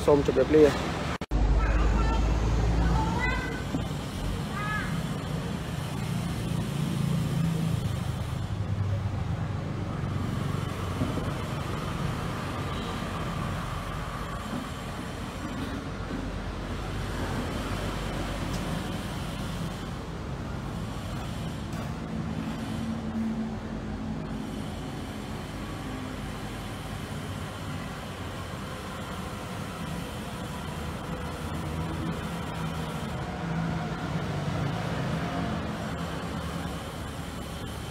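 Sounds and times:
road traffic rumble: 0.0s - 37.9s.

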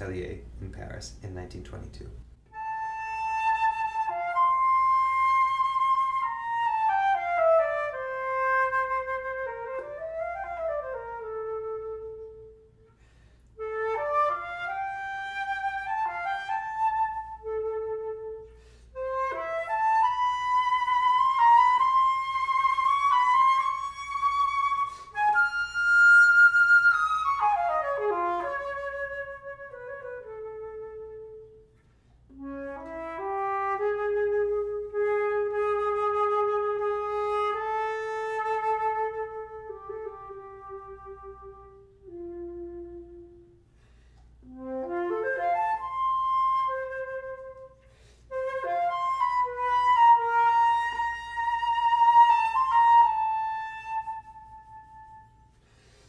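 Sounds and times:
solo flute melody: 2.4s - 56.0s.

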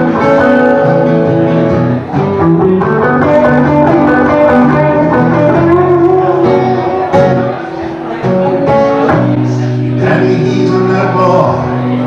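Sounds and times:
acoustic guitar: 0.0s - 12.0s
electric guitar: 0.0s - 12.0s.

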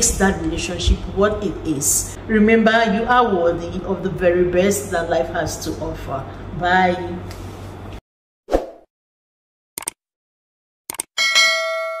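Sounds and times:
notification bell chime: 11.2s - 12.0s.

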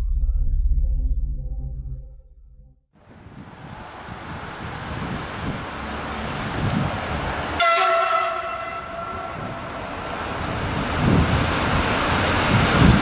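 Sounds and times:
wind rumbling on microphone: 3.0s - 7.6s, 8.4s - 13.0s
approaching freight train: 3.0s - 13.0s
locomotive horn blast: 7.5s - 10.0s.

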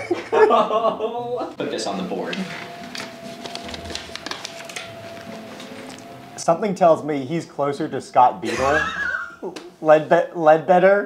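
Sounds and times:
paper rustling: 1.8s - 6.2s.

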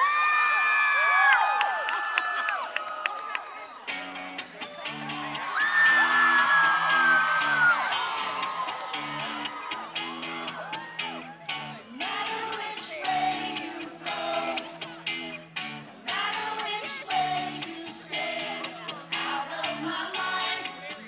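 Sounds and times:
audience whooping and screaming: 0.0s - 4.1s, 4.8s - 11.7s
live band playing choppy riff: 3.9s - 21.0s.

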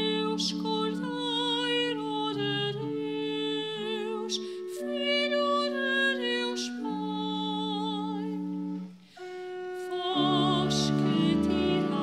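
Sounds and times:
sustained accompaniment chords: 6.2s - 12.0s
voice singing long note: 6.2s - 12.0s.

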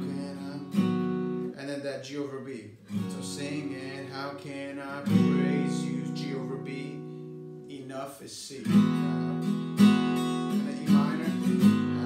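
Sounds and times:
acoustic guitar strummed chord: 2.9s - 7.8s, 8.7s - 12.0s.

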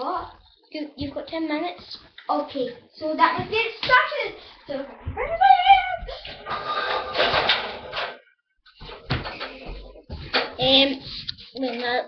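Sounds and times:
indistinct voices: 0.0s - 7.4s.

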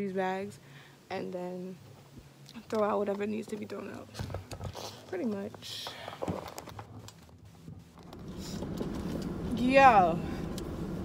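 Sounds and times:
low rumble inside a car: 7.6s - 11.0s.

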